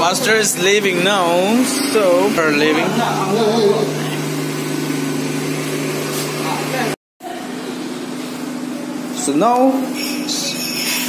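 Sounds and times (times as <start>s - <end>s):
indistinct voices: 0.0s - 4.5s.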